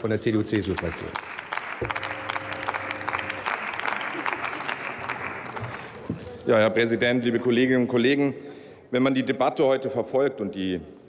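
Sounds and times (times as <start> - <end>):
crowd applauding: 0.6 - 6.4.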